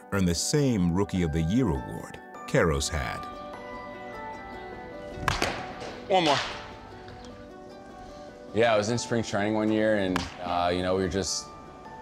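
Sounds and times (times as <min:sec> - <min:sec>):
background music held tones: 0:00.0 - 0:12.0
baseball bat hitting ball: 0:05.2 - 0:07.3, 0:10.1 - 0:10.6.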